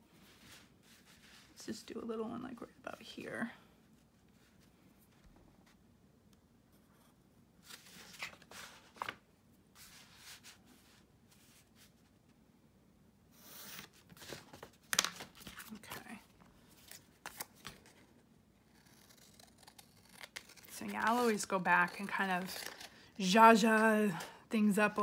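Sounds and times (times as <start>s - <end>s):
paper folders rustling: 7.6s - 10.6s, 13.8s - 18.2s.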